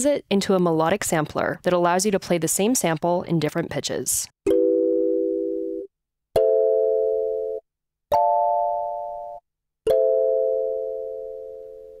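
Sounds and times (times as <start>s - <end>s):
plucked kalimba chords: 6.4s - 6.9s, 9.9s - 11.9s.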